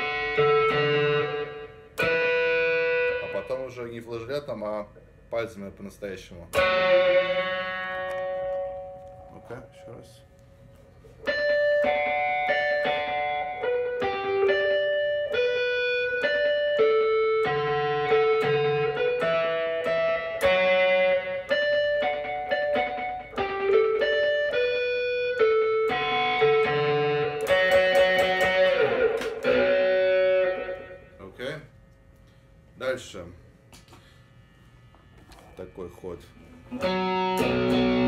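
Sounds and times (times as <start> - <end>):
electric guitar melody: 0.0 - 3.8, 6.5 - 31.2, 36.7 - 38.0
strummed guitar chords: 0.0 - 3.8, 6.5 - 10.0, 11.2 - 31.2, 36.7 - 38.0.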